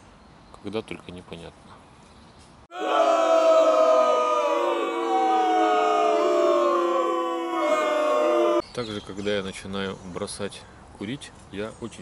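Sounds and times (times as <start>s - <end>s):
crowd cheering: 2.7s - 8.6s.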